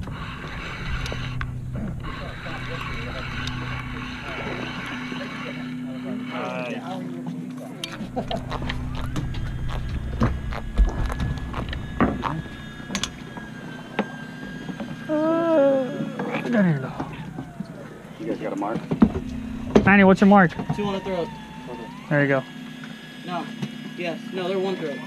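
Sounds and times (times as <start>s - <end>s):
boat engine humming: 0.0s - 25.0s.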